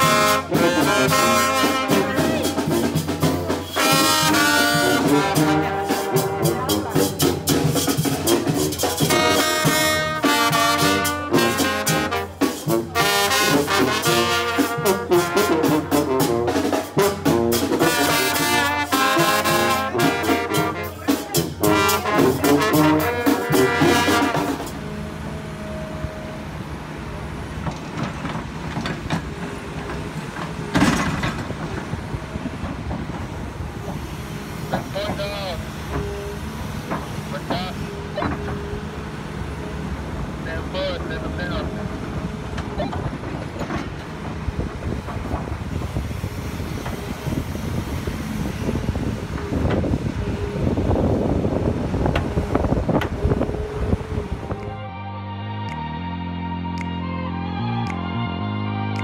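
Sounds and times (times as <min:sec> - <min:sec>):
music: 0:00.0 - 0:26.4, 0:52.2 - 0:59.0
excavator engine running: 0:00.0 - 0:55.0
clatter of knocks and clanks: 0:27.6 - 0:34.1, 0:42.6 - 0:45.6.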